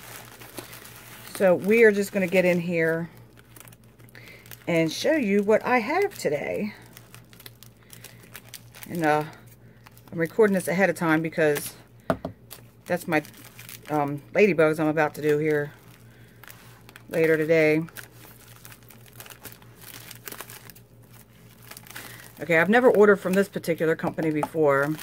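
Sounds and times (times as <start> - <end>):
plastic mailer bag crinkling: 0.0 - 25.0.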